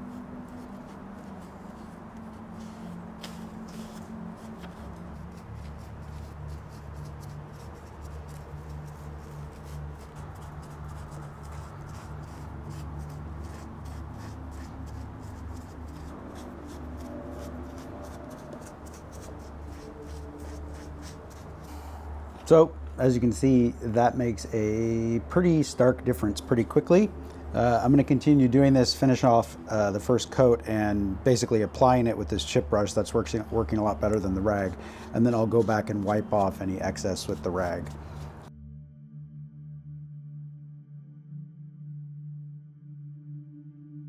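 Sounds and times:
brush strokes on wood: 0:00.0 - 0:38.5
steady low hum: 0:00.0 - 0:43.5.

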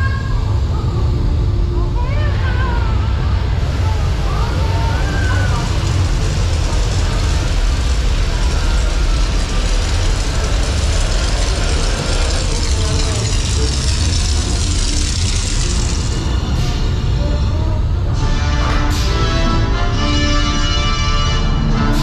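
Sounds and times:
loud low rumble with hiss: 0:00.0 - 0:22.0.

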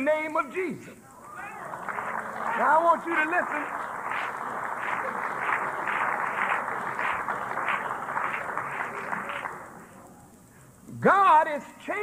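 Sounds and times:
audience applause: 0:01.2 - 0:10.0.

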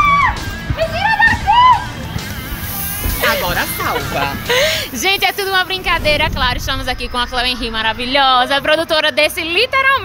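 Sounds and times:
background music: 0:00.0 - 0:10.0
voices whooping and laughing: 0:01.1 - 0:02.0.

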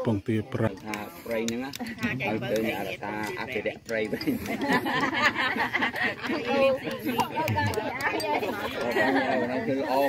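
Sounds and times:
people chatting: 0:00.0 - 0:10.0.

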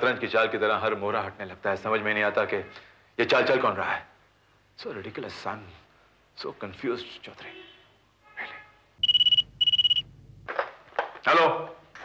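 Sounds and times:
desk telephone ringing: 0:09.0 - 0:10.1.

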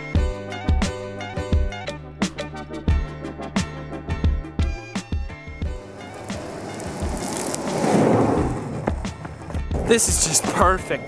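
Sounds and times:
skateboard wheels rolling on asphalt: 0:05.6 - 0:11.0.

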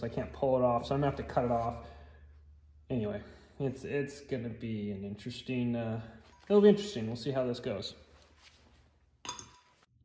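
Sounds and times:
metallic clink with short ring: 0:09.2 - 0:09.9.

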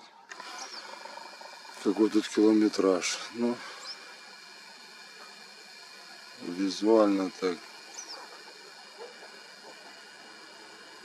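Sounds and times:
camera lens zoom motor whir: 0:00.0 - 0:11.0.

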